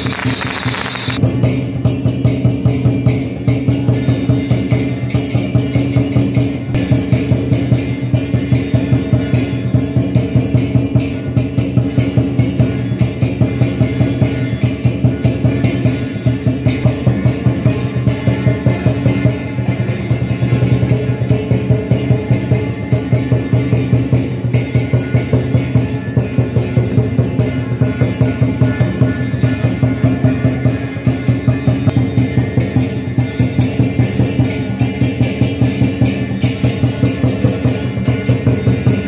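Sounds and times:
cymbals clashing: 0.0s - 39.0s
drums beating fast rhythm: 0.0s - 39.0s.

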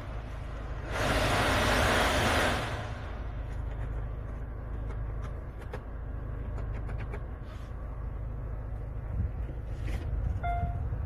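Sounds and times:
blower fan air rushing: 0.0s - 4.8s
low car hum: 0.0s - 11.0s.

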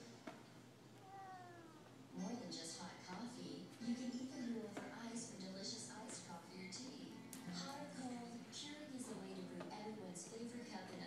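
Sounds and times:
cat meowing: 1.0s - 1.9s.

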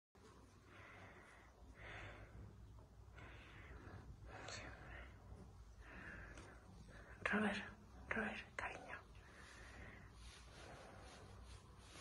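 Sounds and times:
faint background hiss: 0.2s - 12.0s
person whispering: 4.2s - 5.6s, 6.3s - 11.2s.

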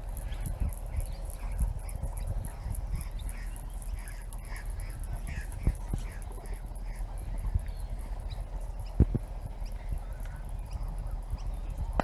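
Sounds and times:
wind buffeting microphone: 0.0s - 12.0s
faint bird chirps: 0.2s - 12.0s.

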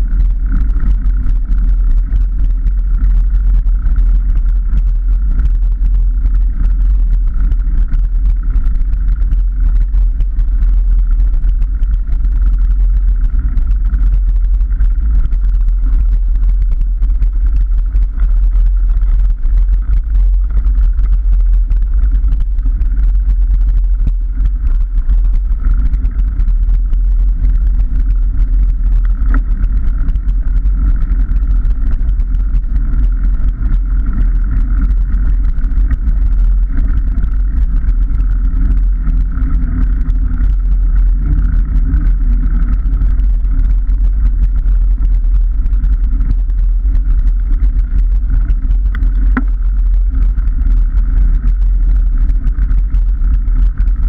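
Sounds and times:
bike tyres rumbling: 0.0s - 54.0s
wind buffeting camera: 0.0s - 54.0s.

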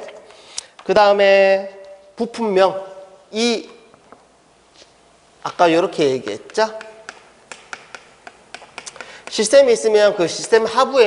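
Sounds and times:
chalk tapping on chalkboard: 6.4s - 9.7s.

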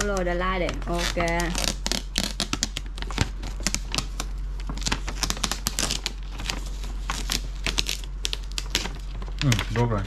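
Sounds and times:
wrapping paper crackling: 0.0s - 10.0s.

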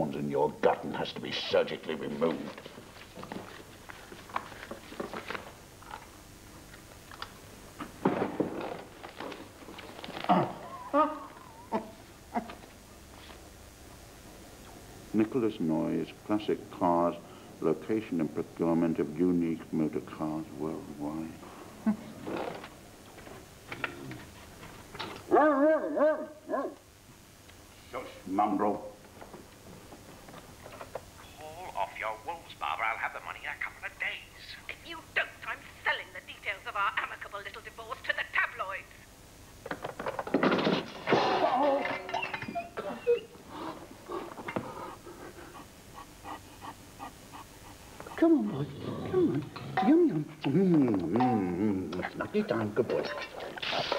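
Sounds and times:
wavering whine-like vocal sound: 10.1s - 12.6s, 48.3s - 52.3s
dog panting: 43.6s - 48.6s.

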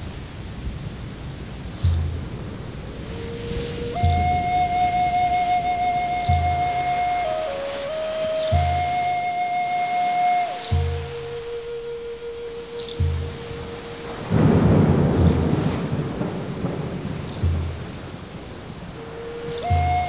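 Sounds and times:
slow low drum beat: 0.0s - 20.0s
flute holding long notes: 2.8s - 20.0s.

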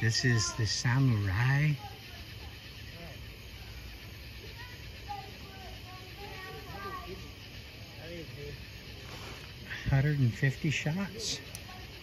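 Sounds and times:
distant talking: 0.0s - 12.0s
steady background hiss: 0.0s - 12.0s.

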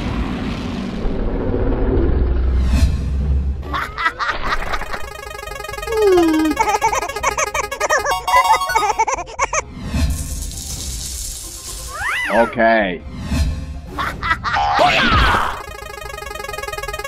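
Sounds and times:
cartoon background music: 3.6s - 17.0s
cartoonish character vocalizations: 5.8s - 9.6s, 14.4s - 15.6s.

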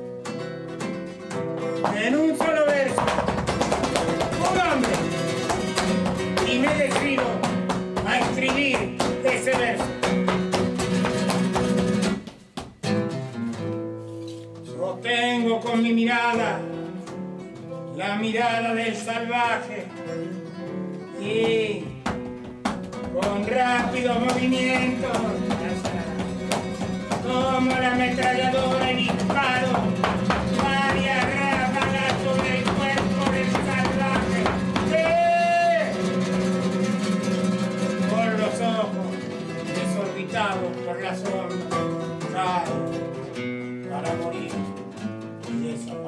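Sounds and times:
flamenco guitar strumming: 0.0s - 46.0s.

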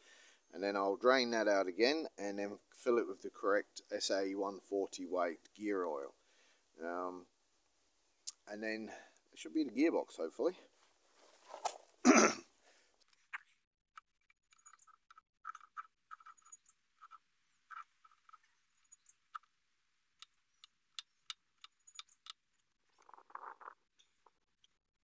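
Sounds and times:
man coughing: 12.0s - 12.5s
grease gun clicks and squeaks: 13.0s - 19.6s, 20.2s - 24.9s.

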